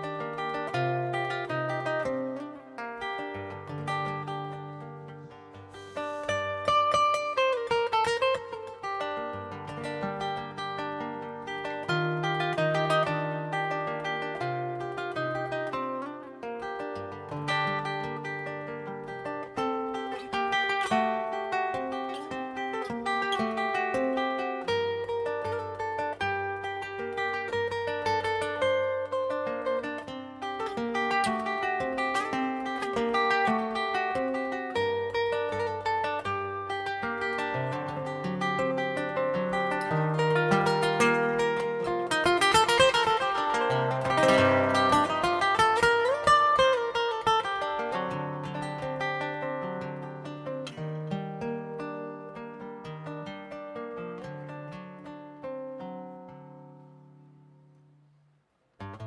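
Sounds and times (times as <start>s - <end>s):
plucked classical guitar melody: 0.0s - 59.0s.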